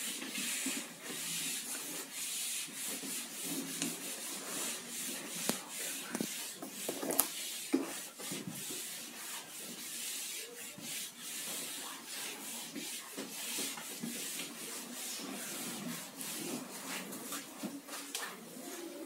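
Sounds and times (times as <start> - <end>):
eraser scrubbing a whiteboard: 0.0 - 19.0.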